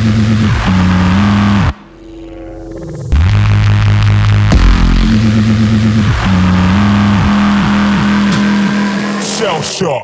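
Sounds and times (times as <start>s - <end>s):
heavy synth bass: 0.0s - 9.5s
drum and bass music: 0.0s - 10.0s.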